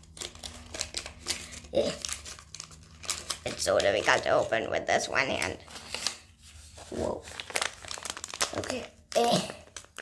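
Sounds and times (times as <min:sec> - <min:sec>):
foil packet crinkling: 0:00.0 - 0:06.2, 0:06.8 - 0:10.0.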